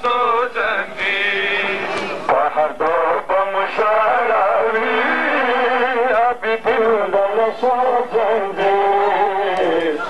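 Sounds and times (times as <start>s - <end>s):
man singing mourning lament: 0.0s - 10.0s.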